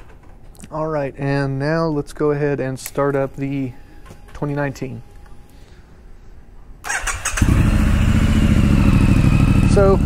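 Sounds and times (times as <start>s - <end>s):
electric starter cranking: 6.8s - 8.0s
motorcycle engine running: 7.4s - 10.0s.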